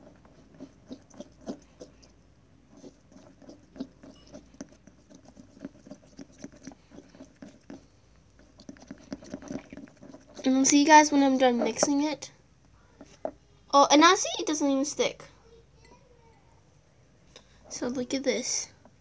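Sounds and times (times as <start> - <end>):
stick stirring thick mixture: 0.0 - 12.3.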